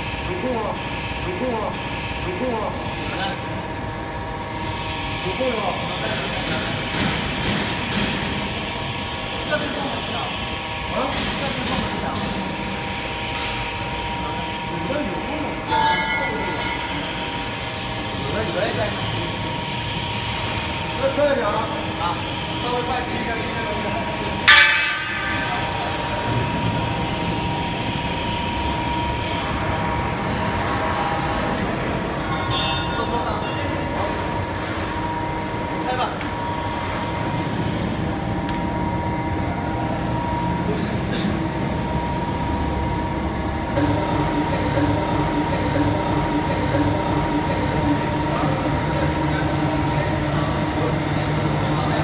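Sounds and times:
machine rollers rumbling: 0.0s - 52.0s.

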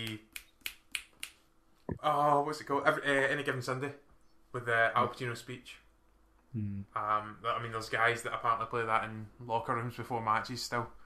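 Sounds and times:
fingers snapping: 0.0s - 1.4s.

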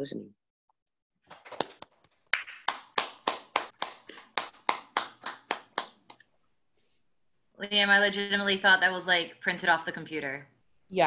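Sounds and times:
hand clapping: 1.5s - 6.3s.

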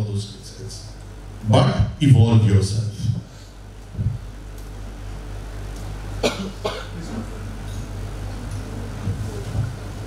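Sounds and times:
low hum: 0.0s - 10.0s
person coughing: 6.2s - 7.2s.

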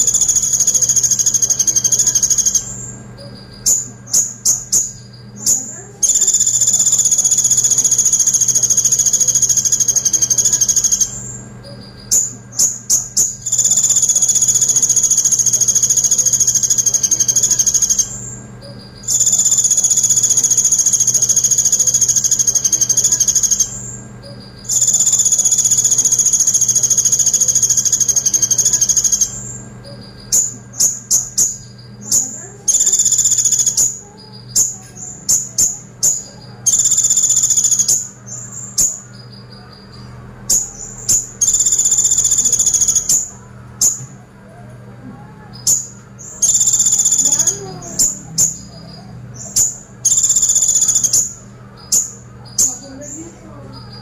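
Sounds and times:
bird singing high-pitched trills: 0.0s - 54.0s.

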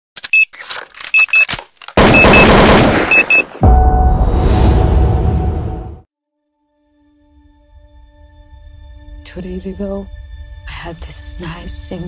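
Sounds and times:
short electronic clicks: 0.2s - 2.5s
paired high beeps: 3.1s - 3.4s
deep boom: 3.6s - 6.0s.

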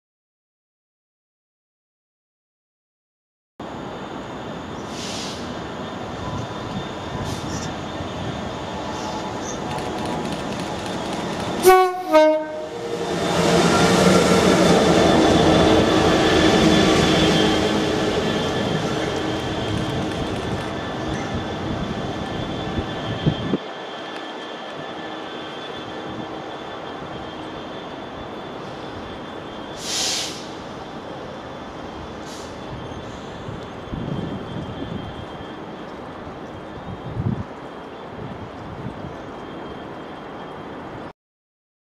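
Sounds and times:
distant rumble of diesel train: 3.6s - 41.1s
short hiss: 4.9s - 5.6s, 29.8s - 30.6s, 32.2s - 32.6s.

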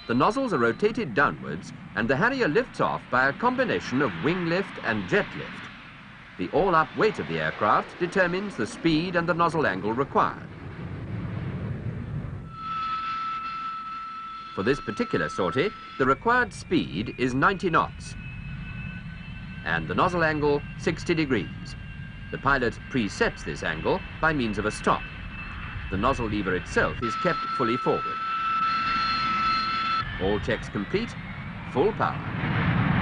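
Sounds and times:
jet engine high-pitched whine: 0.0s - 33.0s
jet engine low rumble: 0.0s - 33.0s.

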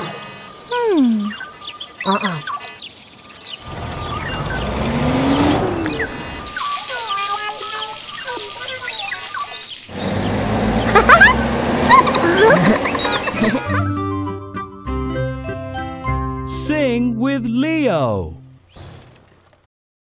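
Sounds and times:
whirring with rising tone: 3.7s - 6.5s
light music: 12.6s - 18.6s.

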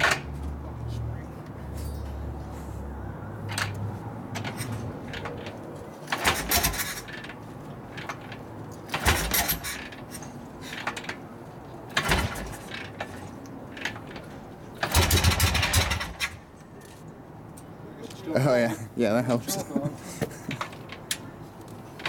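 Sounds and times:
motorcycle engine cranking and coughing: 0.0s - 0.5s, 1.7s - 16.5s, 19.5s - 22.0s.

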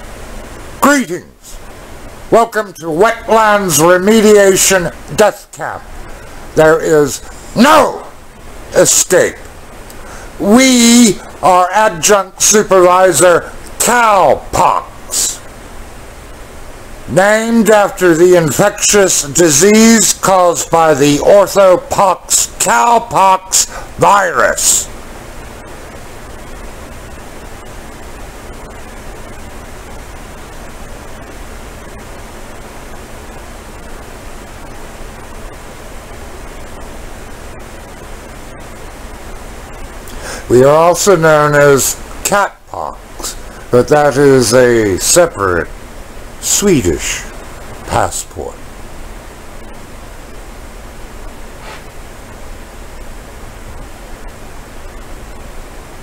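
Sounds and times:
steady static hiss: 0.0s - 56.0s.

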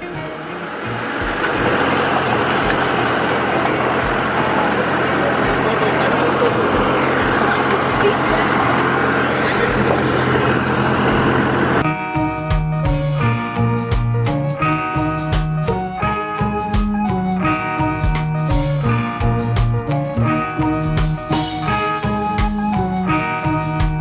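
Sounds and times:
wagon rumble: 0.0s - 11.8s
low vehicle hum: 0.0s - 15.8s
guitar music: 0.0s - 24.0s.

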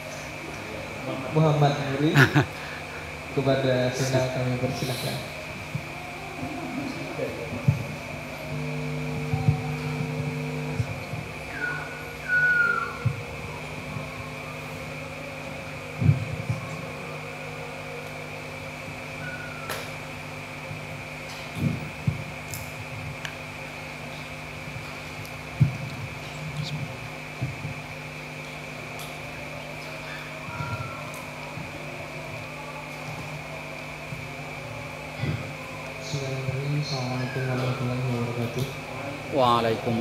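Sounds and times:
constant high whine: 0.0s - 40.0s
mechanical fan hum: 0.0s - 40.0s.

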